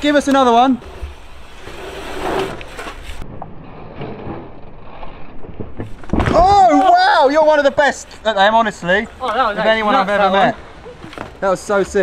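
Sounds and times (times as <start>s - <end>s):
bike tyres on sandy dirt: 0.0s - 12.0s.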